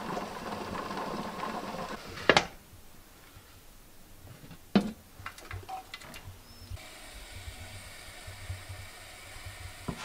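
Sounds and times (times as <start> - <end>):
steam hissing: 6.8 - 10.0.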